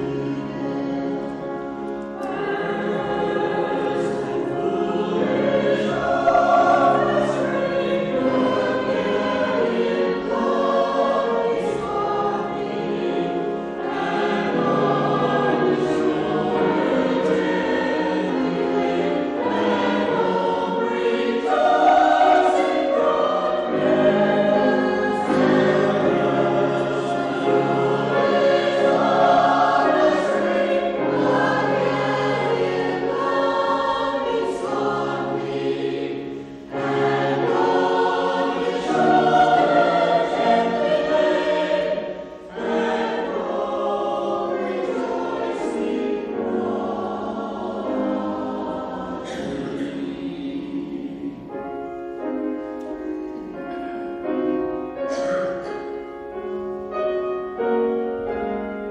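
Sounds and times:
mixed choir singing: 0:00.0 - 0:58.9.

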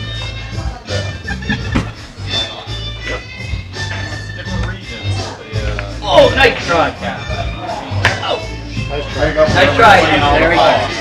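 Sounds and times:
guitar background music: 0:00.0 - 0:11.0.

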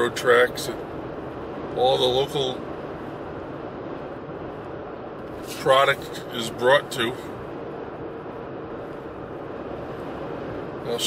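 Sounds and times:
car road and engine noise: 0:00.0 - 0:11.0
faint steady hum: 0:00.0 - 0:11.0.

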